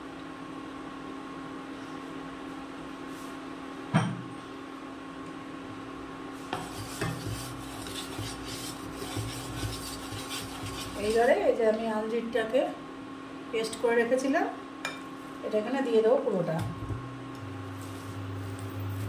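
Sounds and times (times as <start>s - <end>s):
induction cooktop hum: 0.0s - 19.0s
wooden spatula scraping pan: 6.4s - 11.6s.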